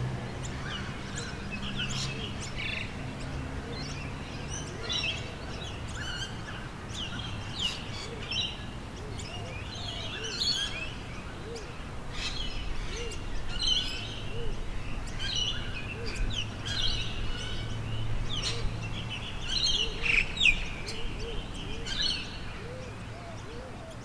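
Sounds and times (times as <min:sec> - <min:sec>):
birds chirping and calling: 0:00.2 - 0:24.0.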